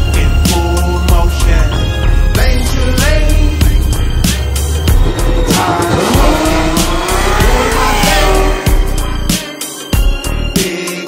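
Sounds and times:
car engine revving: 0.0 - 9.6.

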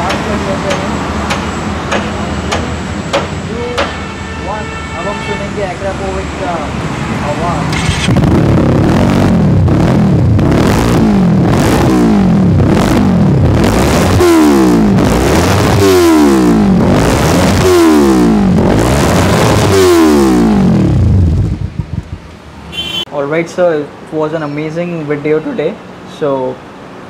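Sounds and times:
motorcycle engine revving: 7.3 - 23.0.

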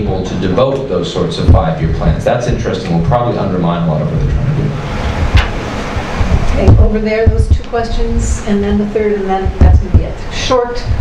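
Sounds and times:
low rumbling on microphone: 0.0 - 11.0
sharp knock: 4.2 - 6.9.

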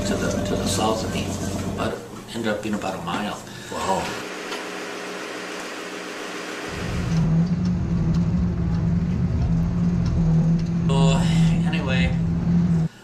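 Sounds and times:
boat engine running: 0.0 - 2.1, 4.0 - 13.0.

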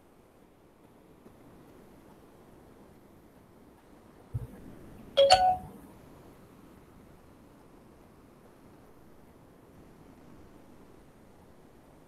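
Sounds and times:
soft low bump: 4.4 - 4.9
two-note notification chime: 5.2 - 5.8.

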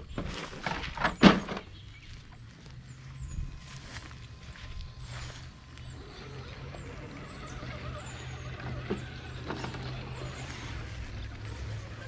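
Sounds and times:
toy car motor and gears whining: 3.6 - 12.0.

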